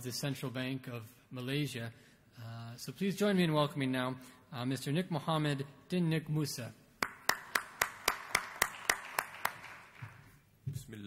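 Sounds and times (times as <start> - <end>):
person clapping: 7.0 - 10.3.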